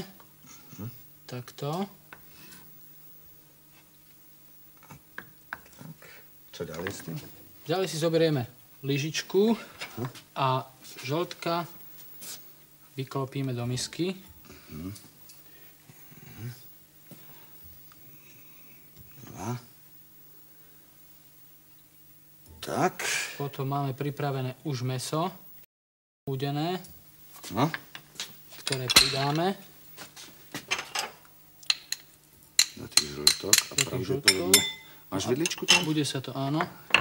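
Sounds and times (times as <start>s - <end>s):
steady low hum: 0.0s - 25.6s.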